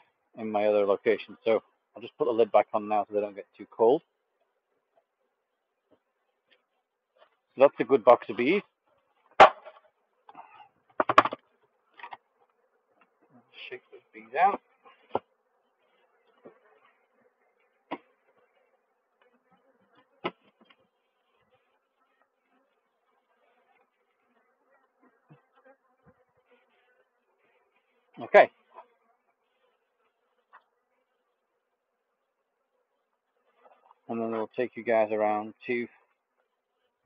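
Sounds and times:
honeybees buzzing: 4.1s - 34.2s
hive lid knocking: 10.9s - 11.4s.

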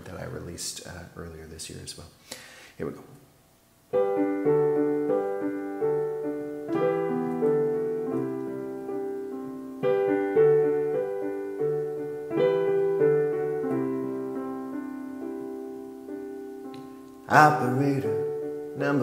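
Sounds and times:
slow piano chords: 3.9s - 19.0s.

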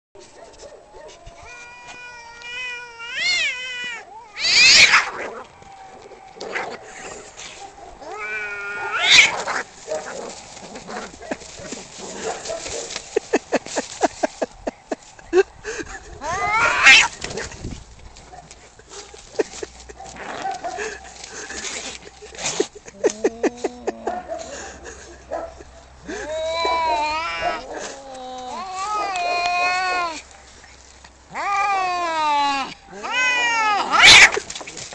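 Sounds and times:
cats yowling: 1.2s - 6.7s, 8.0s - 9.7s, 16.2s - 17.2s, 26.1s - 30.2s, 31.3s - 34.4s
cat growling: 8.0s - 9.7s, 31.3s - 34.4s.

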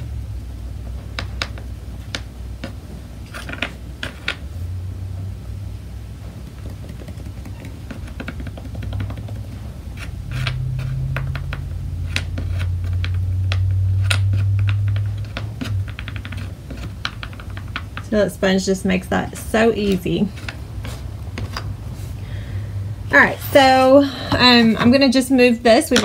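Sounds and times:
low steady hum: 0.0s - 26.0s
wooden pieces knocking on table: 6.4s - 9.6s
sponge dabbing paint: 6.4s - 13.2s.

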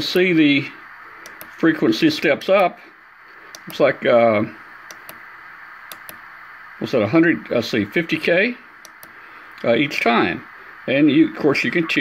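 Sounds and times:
radio band noise hiss: 0.0s - 12.0s
light clicks: 1.2s - 1.6s, 3.5s - 3.8s, 4.9s - 5.2s, 5.9s - 6.2s, 8.8s - 9.7s.

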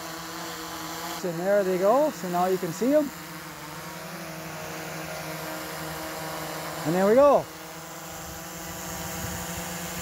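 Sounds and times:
drone propellers buzzing: 0.0s - 10.0s.

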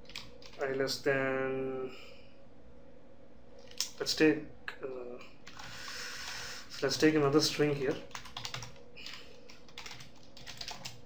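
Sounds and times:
computer keyboard typing: 0.0s - 0.8s, 5.5s - 6.4s, 7.8s - 11.0s.

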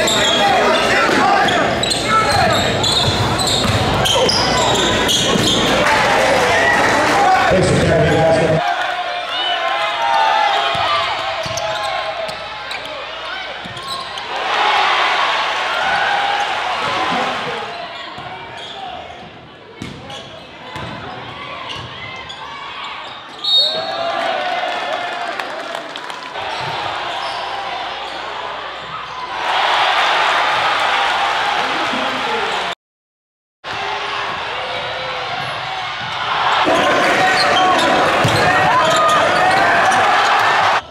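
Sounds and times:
crowd cheering: 0.0s - 18.4s, 23.5s - 32.8s, 33.7s - 40.9s
crowd voices and shouting: 0.0s - 32.8s, 33.6s - 40.9s.

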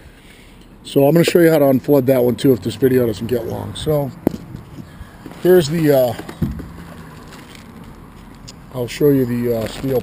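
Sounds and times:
plastic bag rustling: 4.3s - 10.0s.

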